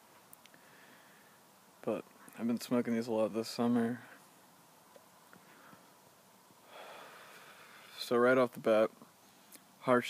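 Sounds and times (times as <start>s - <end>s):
person exhaling smoke: 6.6s - 8.0s.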